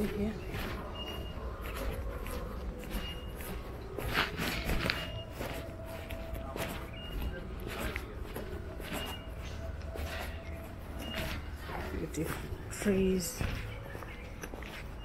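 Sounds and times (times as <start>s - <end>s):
footsteps on paved sidewalk: 0.0s - 15.0s.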